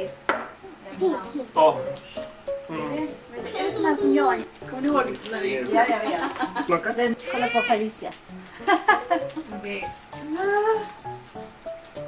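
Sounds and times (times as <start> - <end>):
young child's voice: 0.9 - 1.5, 3.4 - 4.5.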